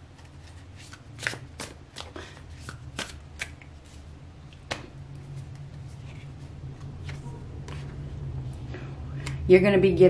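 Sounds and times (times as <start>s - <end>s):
steady low hum: 0.0s - 10.0s
cards being shuffled: 0.1s - 4.0s.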